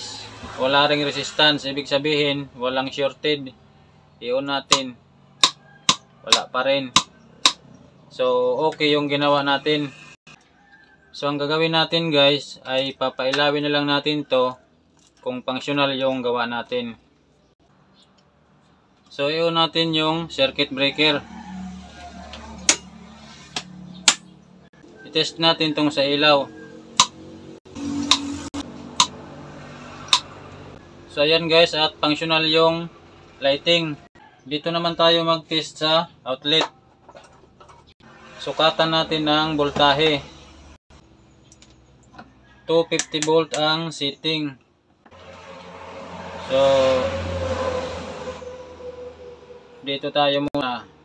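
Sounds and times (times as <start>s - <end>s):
motor vehicle passing: 0.0s - 4.2s, 20.3s - 34.4s, 36.8s - 42.6s, 45.1s - 51.0s.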